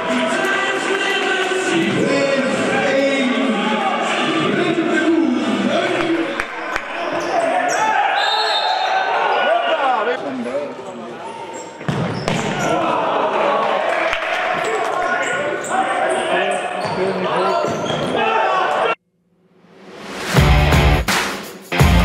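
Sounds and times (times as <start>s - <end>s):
players and spectators shouting: 0.0s - 11.8s, 12.4s - 19.0s
shoes squeaking on court floor: 11.2s - 12.6s, 15.0s - 18.2s.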